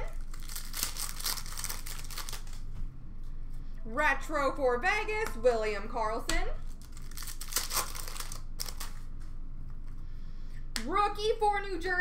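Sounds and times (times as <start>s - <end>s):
wrapper crinkling and tearing: 0.0s - 2.6s, 6.6s - 9.0s.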